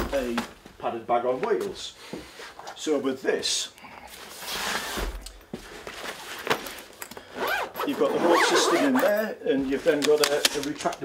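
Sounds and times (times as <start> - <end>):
fabric rustling and scraping: 4.2 - 10.6
bag zipper: 7.3 - 9.3.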